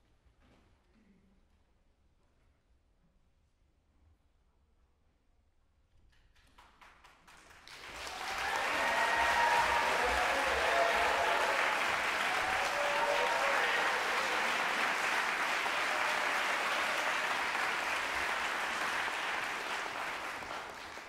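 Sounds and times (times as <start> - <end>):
audience applauding: 6.7 - 21.0.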